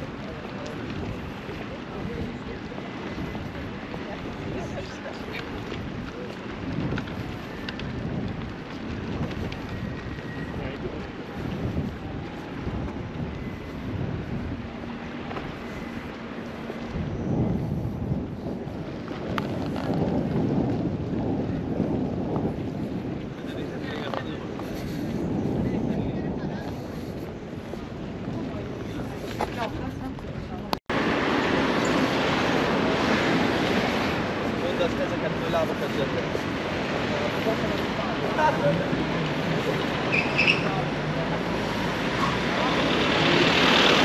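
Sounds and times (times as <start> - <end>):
passers-by talking: 0.0 - 44.0
traffic: 0.0 - 44.0
wind buffeting microphone: 0.0 - 44.0.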